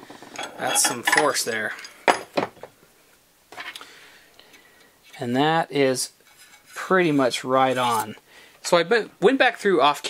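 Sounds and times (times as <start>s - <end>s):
metal hand tools clinking: 0.4s - 2.3s.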